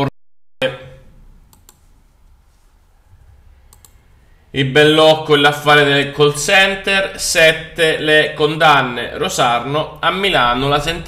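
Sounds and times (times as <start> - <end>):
low steady hum: 0.6 - 11.0
faint quick clicks: 1.5 - 1.9, 3.7 - 4.0.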